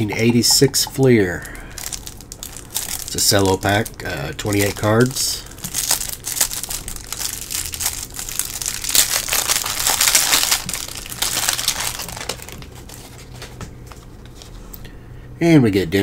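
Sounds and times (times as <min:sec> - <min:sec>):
cellophane wrapper crinkling and tearing: 0:01.7 - 0:13.4.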